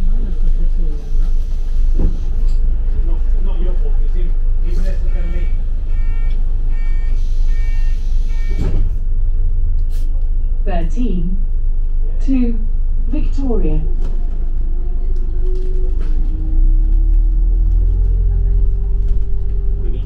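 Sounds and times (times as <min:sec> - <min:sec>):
indistinct passenger voices: 0:00.0 - 0:09.1, 0:09.8 - 0:20.0
bus engine rumble: 0:00.0 - 0:20.0
electronic beeps: 0:05.1 - 0:08.7.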